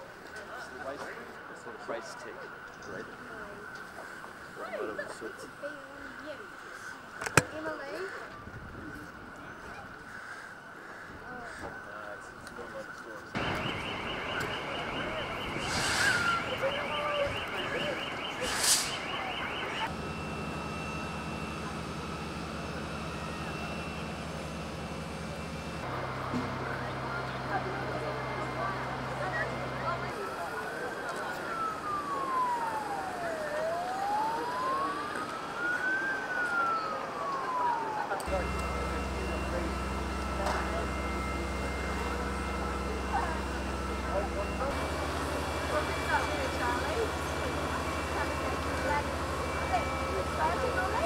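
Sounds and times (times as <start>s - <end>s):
outdoor noise: 0.0s - 51.0s
steady background noise: 0.0s - 51.0s
siren wailing: 0.9s - 51.0s
electronic alarm warbling: 13.4s - 24.2s, 28.5s - 51.0s.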